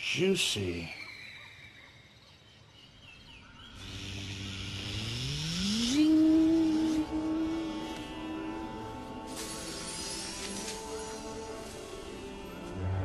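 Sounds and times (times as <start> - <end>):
hissing whoosh: 3.8 - 11.9
held synth note: 3.8 - 13.0
low tone gliding upward: 3.9 - 13.0.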